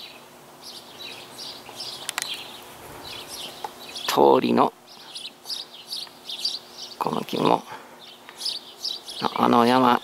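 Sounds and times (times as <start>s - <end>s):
small songbird chirping: 0.0s - 10.0s.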